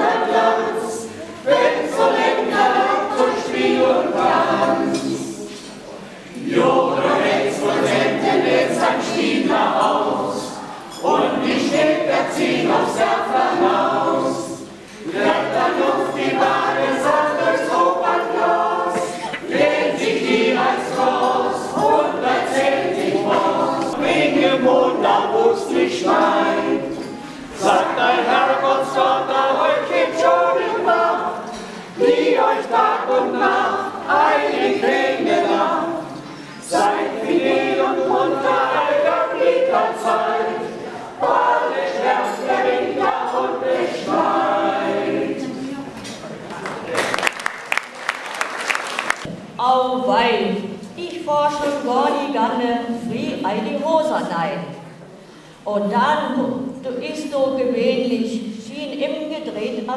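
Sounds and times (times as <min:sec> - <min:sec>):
mixed choir singing a cappella: 0:00.0 - 0:46.2, 0:51.5 - 0:58.6.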